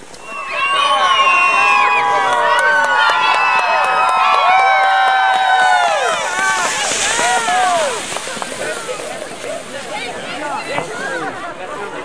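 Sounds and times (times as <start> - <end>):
crowd cheering: 0.0 - 12.0
shouts and calls: 0.2 - 11.2.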